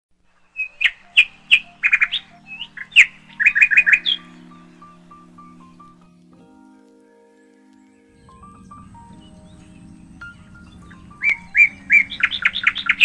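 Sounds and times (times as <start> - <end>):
birds chirping: 0.3 - 13.0
soft background music: 0.3 - 13.0.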